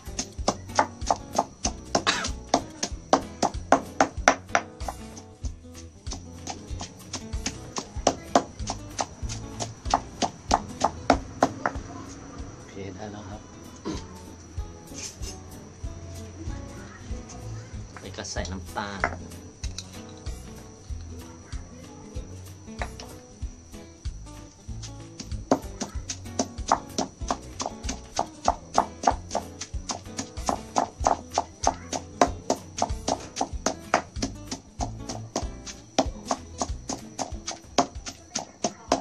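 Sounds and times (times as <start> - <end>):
stone pestle pounding in mortar: 0.0 - 12.0, 19.0 - 19.8, 24.7 - 39.0
background music: 0.0 - 39.0.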